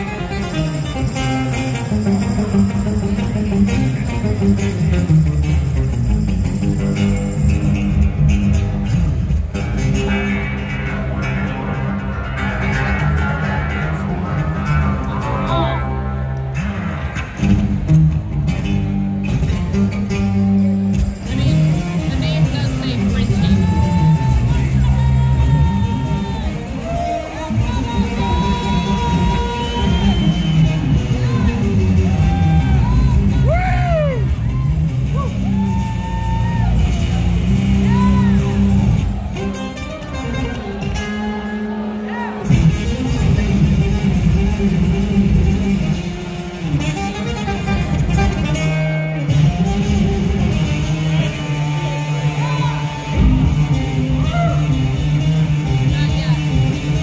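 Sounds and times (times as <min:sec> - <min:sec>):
amplified acoustic guitar: 0:00.0 - 0:57.0
live band music: 0:00.0 - 0:57.0.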